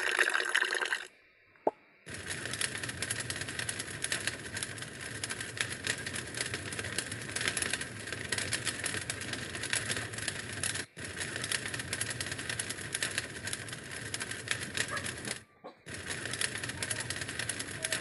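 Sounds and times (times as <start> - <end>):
crackle of flames: 0.0 - 18.0.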